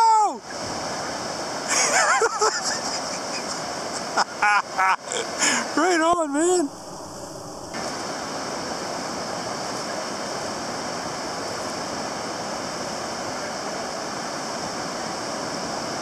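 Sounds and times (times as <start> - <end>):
ocean surf washing on beach: 0.0 - 16.0.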